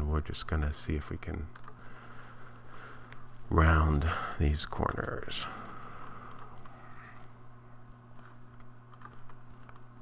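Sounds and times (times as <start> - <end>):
steady low hum: 0.0 - 10.0
keyboard and mouse clicks: 1.5 - 1.8, 6.2 - 6.7, 8.2 - 10.0.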